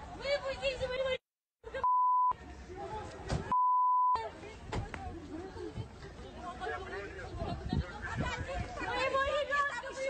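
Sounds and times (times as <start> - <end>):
background noise: 0.0 - 10.0
censor bleep tone: 1.8 - 2.4, 3.5 - 4.2.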